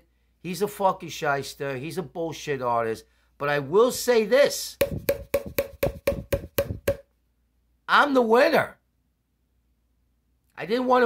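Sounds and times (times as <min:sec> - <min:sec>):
hollow wooden knocking: 0:04.8 - 0:07.1.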